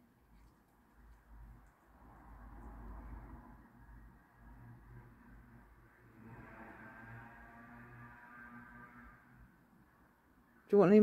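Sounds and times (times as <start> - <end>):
faint distant car engine hum: 0.0 - 11.0.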